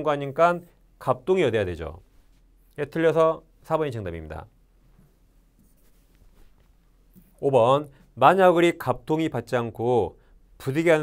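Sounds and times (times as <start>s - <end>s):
faint light scratches: 5.0s - 7.4s.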